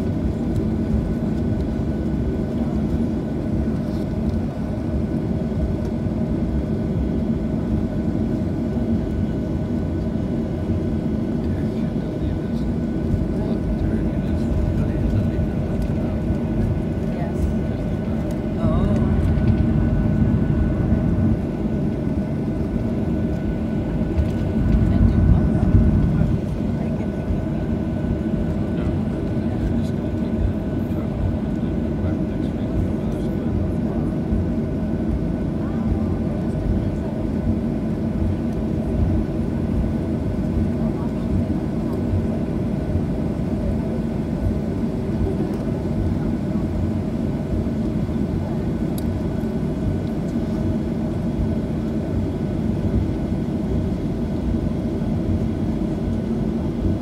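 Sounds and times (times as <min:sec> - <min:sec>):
faint steady engine whine: 0:00.0 - 0:57.0
jet engines idling rumble: 0:00.0 - 0:57.0.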